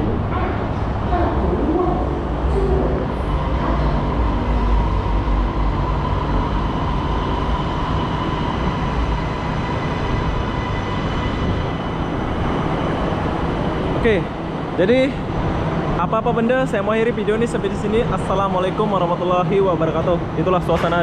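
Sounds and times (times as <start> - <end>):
deep rumble: 0.0 - 16.0
train hum: 0.0 - 21.0
train whine: 0.0 - 21.0.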